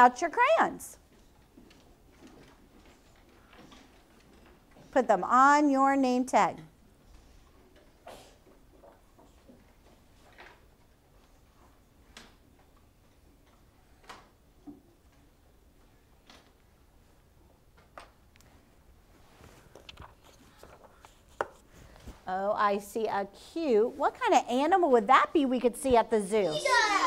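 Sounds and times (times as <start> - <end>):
crayons tapping on desks: 19.7 - 21.7.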